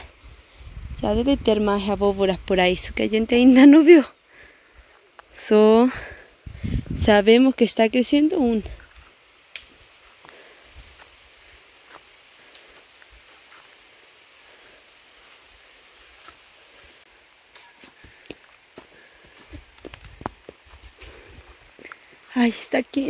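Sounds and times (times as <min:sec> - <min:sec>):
soft outdoor hiss: 0:00.0 - 0:23.0
footsteps crunching on stony trail: 0:08.6 - 0:13.9, 0:14.5 - 0:16.8, 0:17.6 - 0:22.6.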